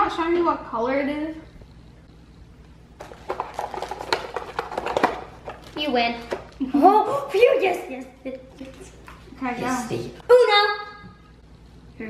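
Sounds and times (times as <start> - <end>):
cards clicking on countertop: 3.0 - 6.6.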